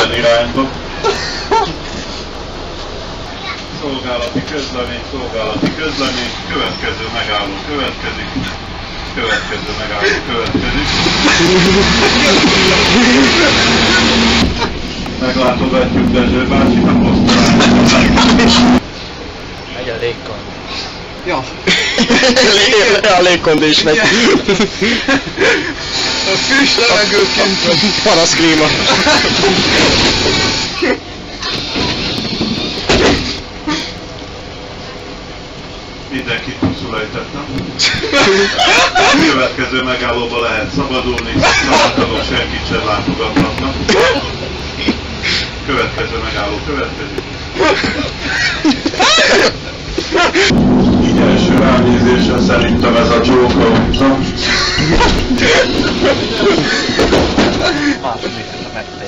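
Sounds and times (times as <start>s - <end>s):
tram rumble and hiss: 0.0s - 59.0s
sudden loud noise: 10.6s - 18.9s, 50.2s - 59.0s
man talking: 22.3s - 24.5s, 50.9s - 56.8s, 57.6s - 59.0s.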